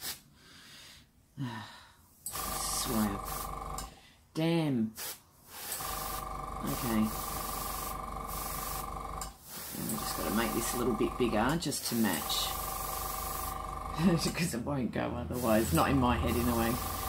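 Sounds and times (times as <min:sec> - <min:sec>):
compressor hum: 0:02.2 - 0:04.0, 0:05.8 - 0:17.0
airbrush hissing air: 0:02.3 - 0:03.8, 0:05.0 - 0:14.2, 0:15.3 - 0:17.0.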